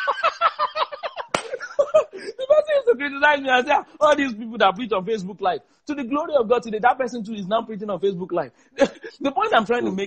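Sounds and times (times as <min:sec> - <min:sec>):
men laughing and talking: 0:00.0 - 0:04.5
sharp slap: 0:01.3 - 0:01.6.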